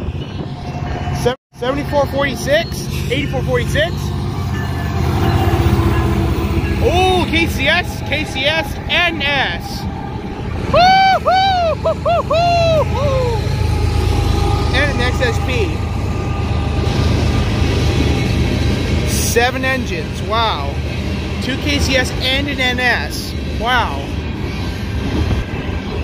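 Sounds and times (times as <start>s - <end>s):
diesel locomotive engine rumble: 0.0s - 26.0s.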